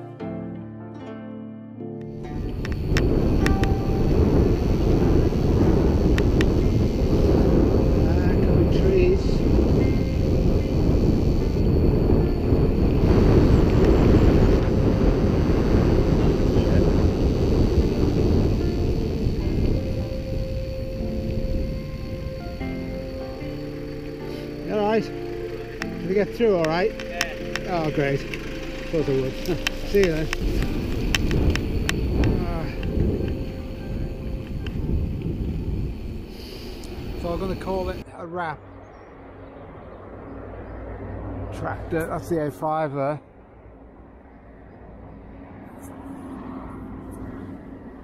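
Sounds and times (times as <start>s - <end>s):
wind rushing over microphone: 2.2s - 48.0s.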